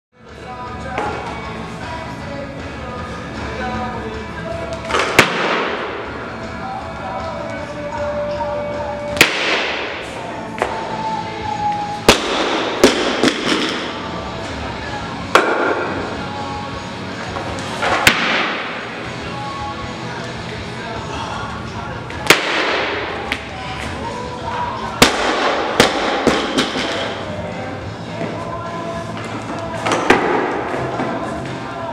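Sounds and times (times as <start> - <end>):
background music: 0.2 - 31.9
barbell crashing and bouncing: 12.1 - 14.0, 25.0 - 27.2.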